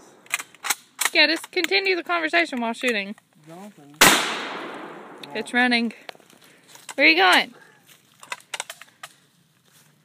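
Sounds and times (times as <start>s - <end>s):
gunshot crack with echo: 4.0s - 5.4s.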